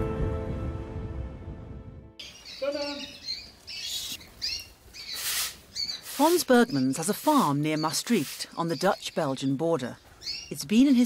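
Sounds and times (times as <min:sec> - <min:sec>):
music: 0:00.0 - 0:02.2
canaries chirping: 0:02.2 - 0:11.0
broom sweeping concrete floor: 0:05.1 - 0:08.6.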